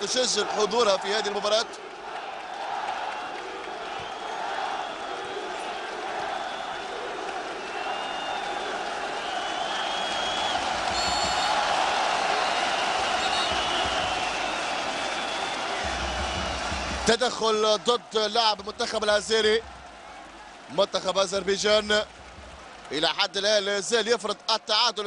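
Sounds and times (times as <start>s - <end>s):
stadium crowd din: 0.0s - 25.0s
long high whistles: 9.2s - 16.8s.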